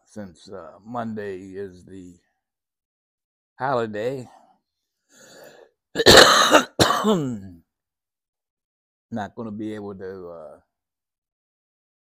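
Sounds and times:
man coughing: 6.0 - 7.5.

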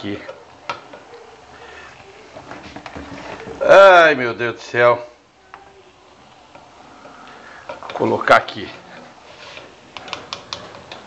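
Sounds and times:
soft scraping of spooned lentils: 6.2 - 11.0.

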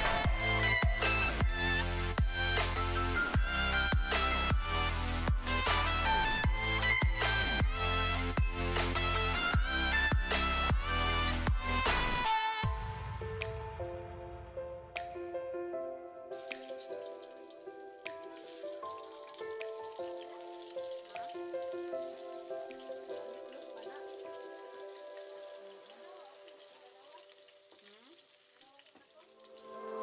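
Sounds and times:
melodic background music: 0.0 - 27.8, 29.2 - 30.0
onion and garlic sizzling in oil: 16.4 - 30.0.

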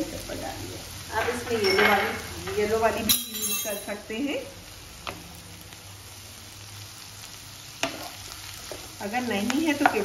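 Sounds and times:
vegetables sizzling in a wok: 0.0 - 10.0
spatula tapping pan: 9.7 - 10.0.

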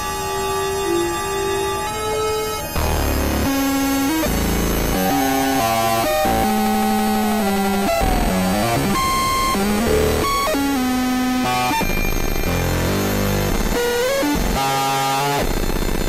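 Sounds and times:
experimental electronic music: 0.0 - 16.0.

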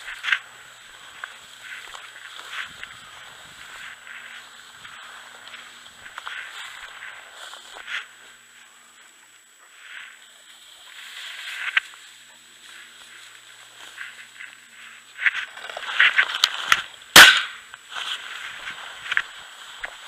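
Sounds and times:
dry grass rustling: 0.0 - 20.0
shotgun shot with echo: 17.2 - 17.6.

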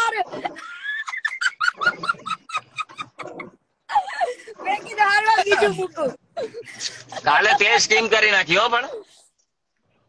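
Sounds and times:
woman laughing hard: 0.6 - 4.4.

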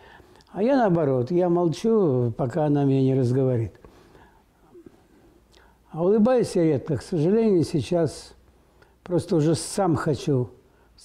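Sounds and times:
low room noise: 0.0 - 11.0
man talking: 0.5 - 3.8, 5.9 - 8.4, 9.0 - 10.6.

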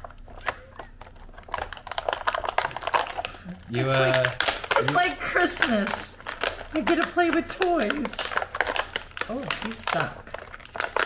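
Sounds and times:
plastic packaging clicking and crackling: 0.0 - 11.0.

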